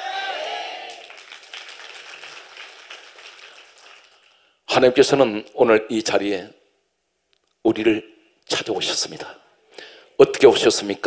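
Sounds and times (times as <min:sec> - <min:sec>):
congregation applauding: 0:00.0 - 0:04.4.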